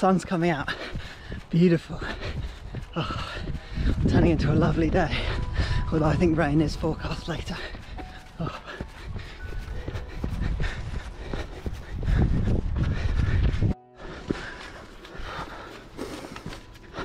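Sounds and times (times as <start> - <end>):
wind buffeting microphone: 0.0 - 15.7
footsteps thudding on grass: 6.3 - 17.0.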